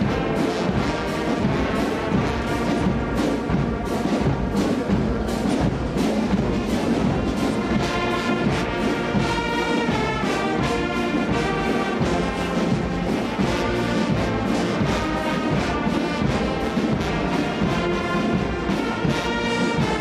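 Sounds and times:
brass band playing slow piece: 0:00.0 - 0:20.0.

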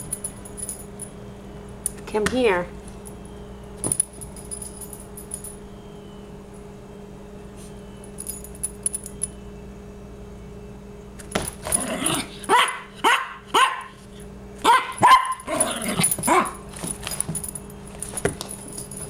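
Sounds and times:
small dog barking: 0:12.5 - 0:14.0, 0:14.6 - 0:16.6.

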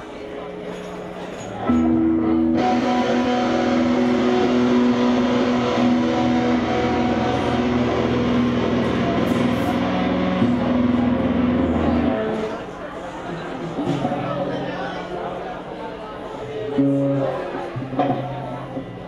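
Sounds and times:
distorted electric guitars: 0:01.5 - 0:12.8, 0:13.6 - 0:14.7, 0:16.6 - 0:19.0.

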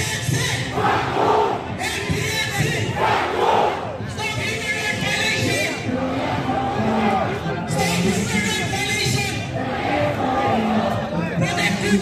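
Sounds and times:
crowd noise: 0:00.0 - 0:12.0
crowd shouting slogans: 0:00.2 - 0:04.1, 0:05.1 - 0:08.3, 0:09.3 - 0:12.0.

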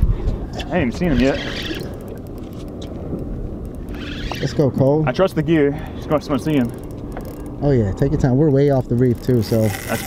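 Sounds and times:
wind: 0:00.0 - 0:10.0
fishing reel ticking: 0:00.9 - 0:07.7, 0:08.6 - 0:10.0.

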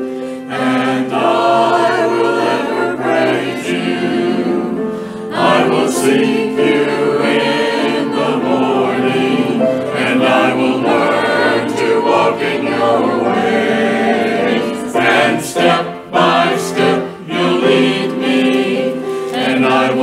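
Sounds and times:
mixed choir singing: 0:00.0 - 0:20.0.

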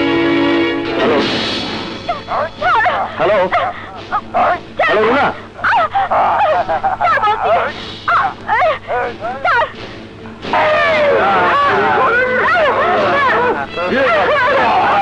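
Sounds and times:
man talking animatedly: 0:02.9 - 0:05.5.

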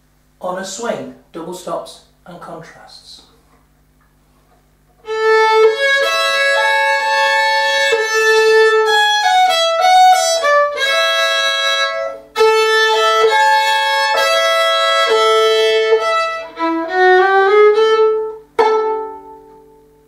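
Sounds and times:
solo violin playing double stops: 0:05.0 - 0:19.8.

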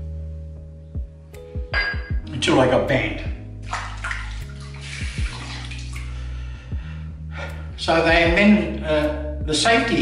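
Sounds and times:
background music: 0:00.0 - 0:10.0
water running from a tap: 0:03.6 - 0:06.2.

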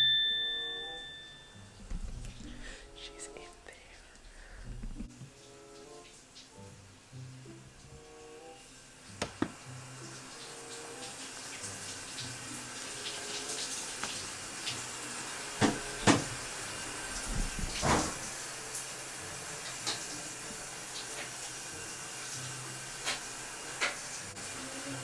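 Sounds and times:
shower running: 0:04.2 - 0:25.0.

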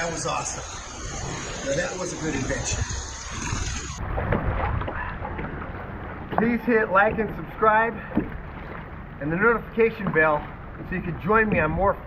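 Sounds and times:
wind on microphone: 0:00.0 - 0:06.4
paddle dipping in water: 0:04.0 - 0:12.0
water splashing around kayak: 0:04.0 - 0:12.0.

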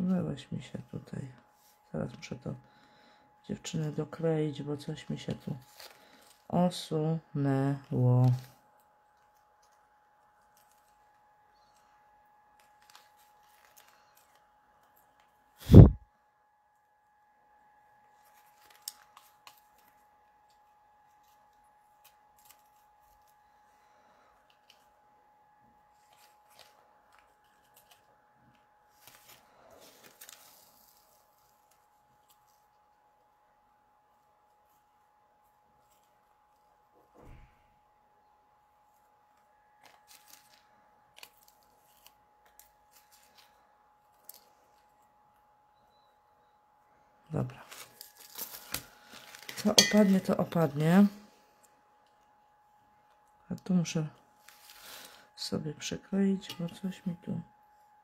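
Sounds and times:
steady high hum: 0:00.0 - 0:58.0
paper rustling: 0:05.3 - 0:06.4, 0:12.6 - 0:15.9, 0:18.1 - 0:23.6, 0:25.9 - 0:32.8, 0:39.8 - 0:45.0, 0:47.6 - 0:50.2, 0:54.4 - 0:55.2.

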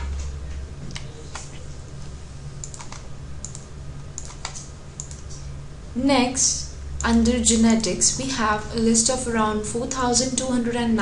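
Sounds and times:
steady low hum: 0:00.0 - 0:11.0
computer mouse clicks: 0:02.6 - 0:05.5.

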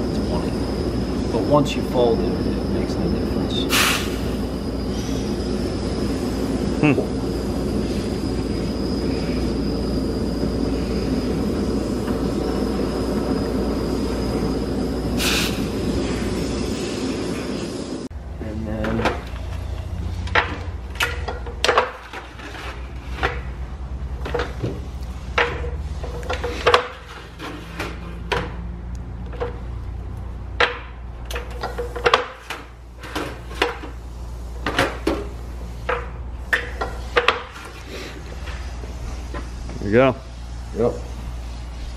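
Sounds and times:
machine drone with high whine: 0:00.0 - 0:41.9.

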